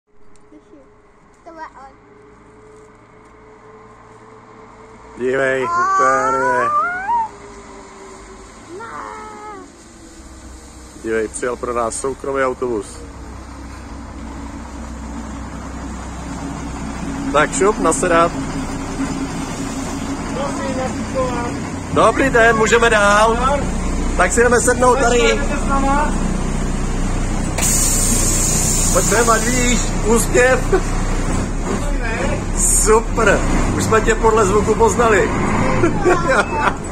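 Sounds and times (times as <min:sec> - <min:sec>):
low outdoor rumble: 0:00.1 - 0:36.9
bus diesel engine running: 0:00.2 - 0:36.9
compressed air hiss: 0:27.5 - 0:30.0.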